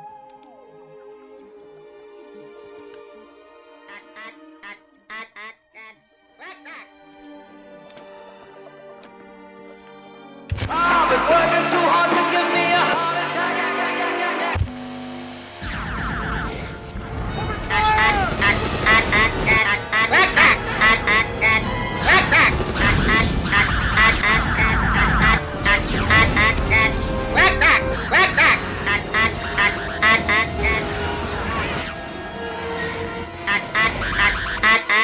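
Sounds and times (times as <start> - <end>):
film score music: 0.0 - 35.0
squawky alien voice: 15.6 - 32.1.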